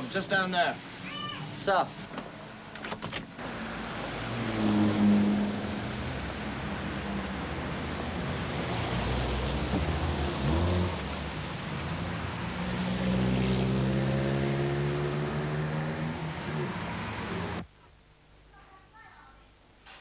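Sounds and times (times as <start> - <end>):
passing cars rumble: 3.4 - 17.6
vehicle engine passing by: 3.5 - 17.6.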